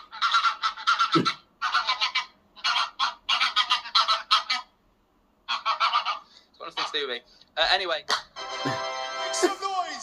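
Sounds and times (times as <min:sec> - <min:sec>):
geese honking: 0:00.0 - 0:04.8, 0:05.4 - 0:07.2.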